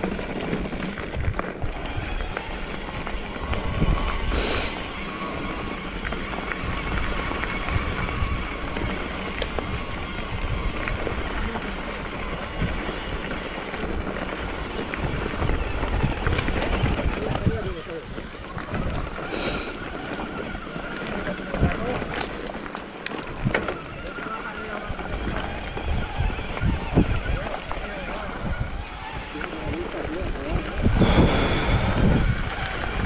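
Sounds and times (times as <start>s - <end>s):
bike rattling and knocking: 0.0s - 31.2s
tyres crunching on loose stones: 0.0s - 33.0s
steady rush of noise: 30.8s - 33.0s.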